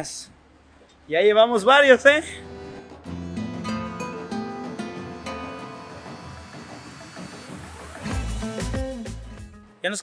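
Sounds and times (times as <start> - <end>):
acoustic guitar notes plucked: 2.4 - 6.5.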